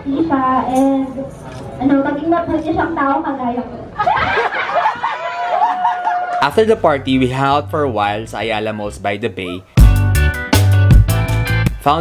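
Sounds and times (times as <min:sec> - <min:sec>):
people laughing: 0:03.9 - 0:06.5.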